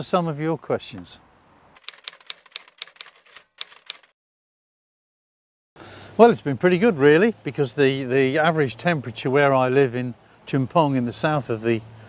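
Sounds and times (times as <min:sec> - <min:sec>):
typewriter key clicks: 0:01.8 - 0:04.1.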